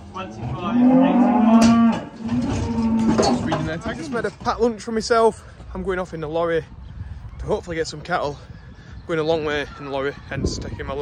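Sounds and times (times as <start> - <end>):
cow mooing: 0.2 - 3.4.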